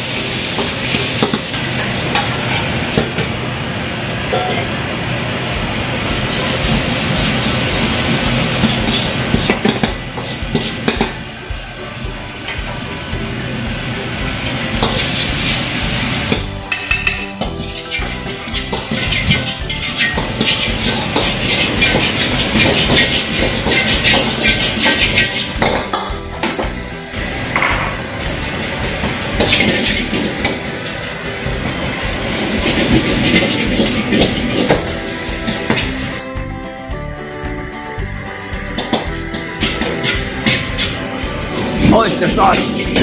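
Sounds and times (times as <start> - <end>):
background music: 0.0 - 43.0
frying sizzle: 0.0 - 43.0
metal ladle scraping a wok: 16.6 - 25.6.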